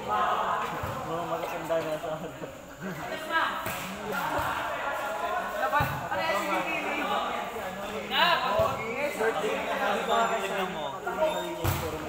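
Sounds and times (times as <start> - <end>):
players shouting and calling out: 0.0 - 12.0.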